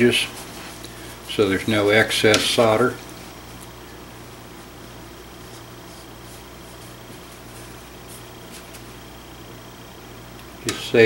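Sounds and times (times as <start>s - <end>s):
man speaking: 0.0s - 0.4s, 1.3s - 3.0s, 10.6s - 11.0s
low room hum: 0.0s - 11.0s.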